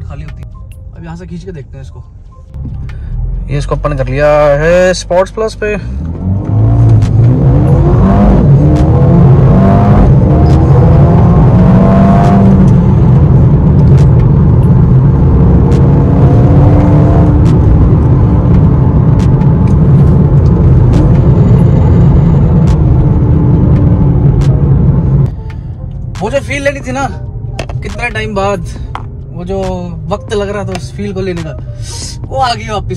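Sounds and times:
low drone of engine and road: 0.0s - 32.9s
car engine accelerating: 2.4s - 32.9s.

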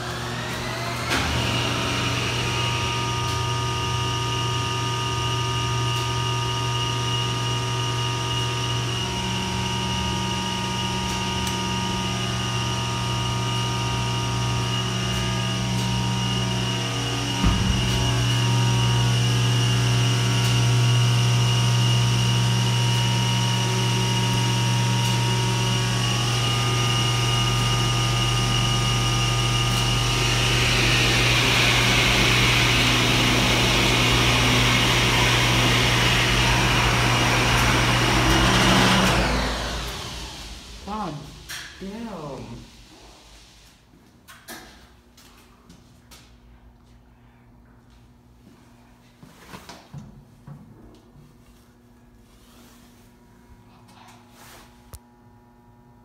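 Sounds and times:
elevator pump motor humming: 0.0s - 42.6s.

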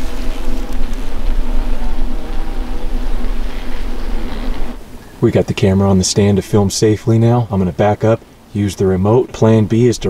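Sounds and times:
low rumble: 0.0s - 7.4s
honeybees buzzing: 0.0s - 10.0s.

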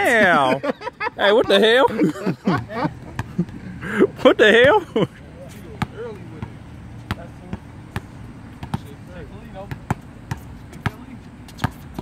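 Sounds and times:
basketball bouncing on hard court: 2.6s - 3.6s, 5.8s - 9.0s, 9.6s - 12.0s.

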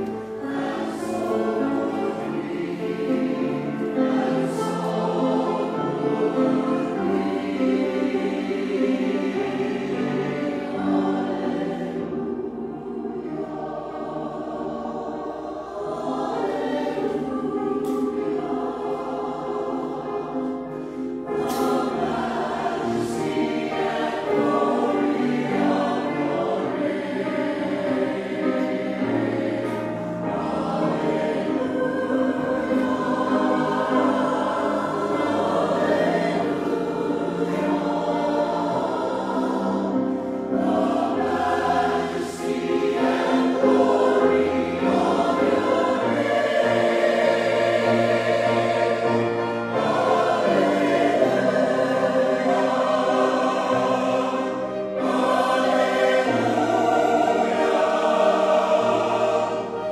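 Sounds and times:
choir singing a hymn: 0.0s - 59.9s
lower accompaniment line: 0.0s - 59.9s.

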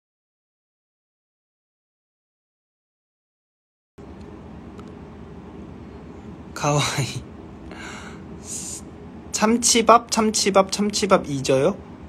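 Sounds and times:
low background rumble: 4.0s - 12.0s.

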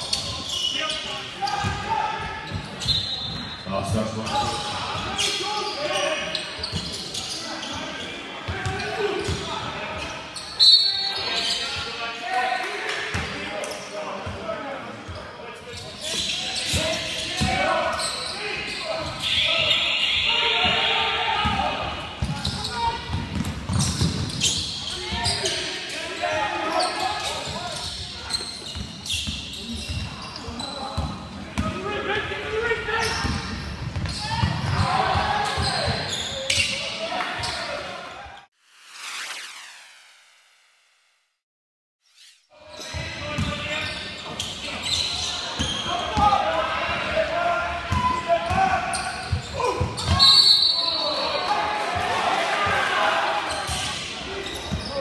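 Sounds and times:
voices echoing in hall: 0.0s - 38.5s, 42.6s - 55.0s
basketball bouncing on court: 22.2s - 24.6s, 31.0s - 31.8s, 33.0s - 36.0s, 47.9s - 50.2s.

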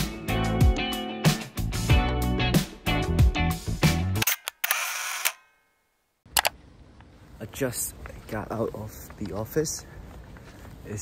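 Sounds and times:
camera shutter clicks: 4.2s - 5.5s
shutter and winding noise: 4.2s - 5.5s.

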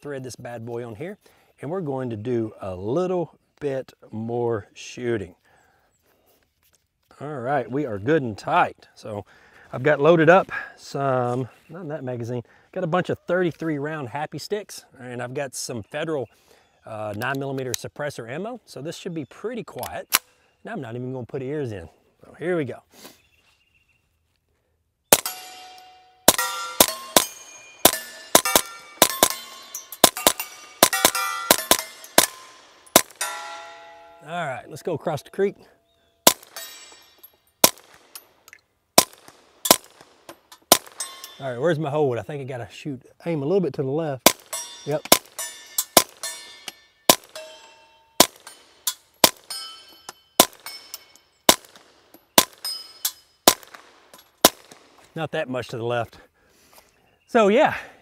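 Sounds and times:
suppressed gunshots: 25.1s - 33.5s, 37.6s - 38.2s, 39.0s - 41.0s, 51.5s - 52.7s, 53.4s - 55.0s
steel plates ringing: 25.2s - 35.4s, 36.4s - 37.4s, 40.5s - 41.5s, 44.4s - 51.5s, 52.6s - 53.4s.

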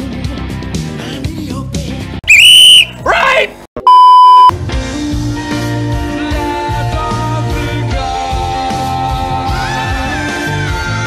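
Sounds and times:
censor bleep: 2.3s - 3.0s, 3.8s - 4.5s.

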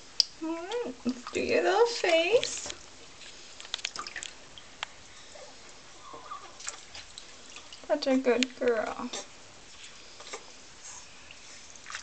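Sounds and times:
water drips: 0.1s - 5.0s, 6.0s - 9.3s, 11.2s - 12.0s.

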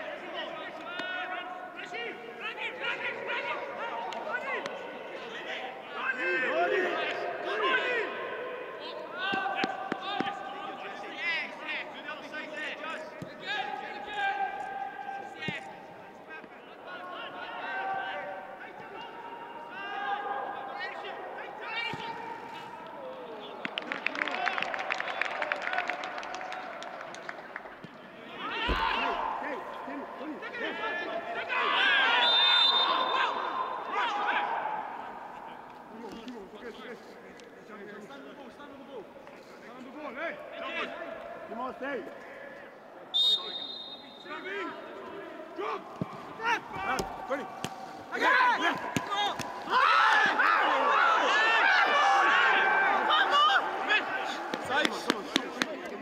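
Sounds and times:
players shouting: 0.0s - 15.9s, 16.6s - 24.5s, 28.2s - 36.7s, 40.3s - 56.0s.

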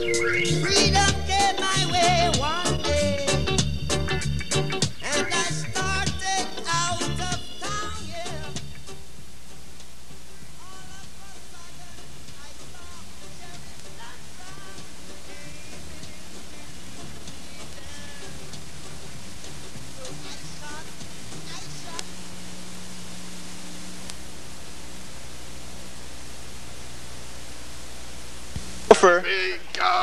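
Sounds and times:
dance party music: 0.0s - 9.0s, 10.6s - 22.6s
voices calling out: 0.0s - 9.1s, 9.9s - 25.7s, 28.6s - 30.0s
crowd noise roar: 0.0s - 27.1s, 28.5s - 30.0s.

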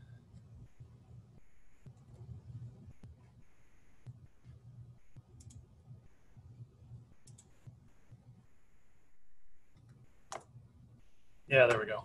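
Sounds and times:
faint low rumble: 0.0s - 11.5s
computer mouse clicks: 5.1s - 5.6s, 7.2s - 7.7s.

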